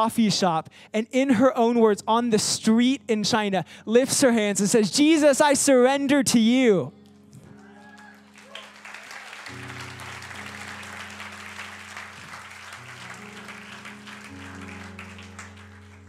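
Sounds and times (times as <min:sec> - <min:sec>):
soft held keyboard chords: 0:01.2 - 0:16.0
congregation applauding: 0:07.5 - 0:16.0.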